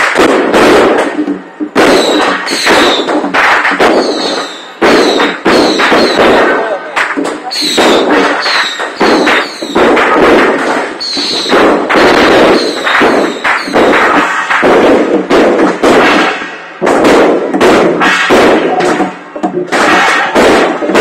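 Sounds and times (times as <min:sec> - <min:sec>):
firecrackers crackling: 0:00.0 - 0:21.0.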